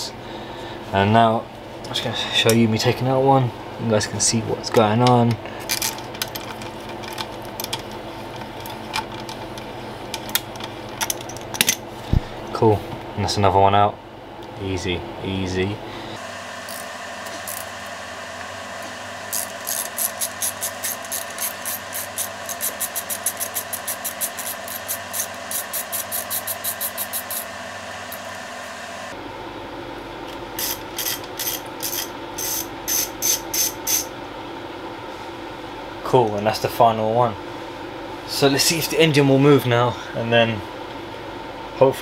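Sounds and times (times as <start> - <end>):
hand ratchet clicking: 19.3 - 27.4, 30.6 - 34.1.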